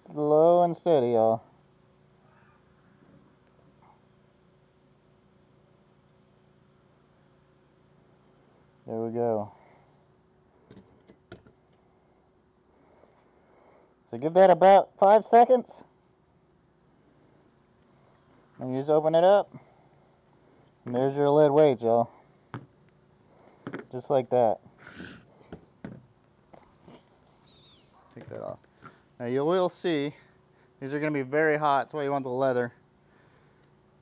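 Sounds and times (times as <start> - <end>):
faint outdoor ambience: 0.0 - 34.0.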